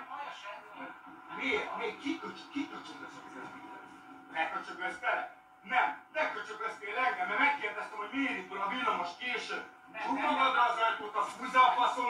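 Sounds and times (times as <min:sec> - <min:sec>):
faint muffled recorded voices: 0:00.0 - 0:12.0
faint steady hum: 0:00.0 - 0:12.0.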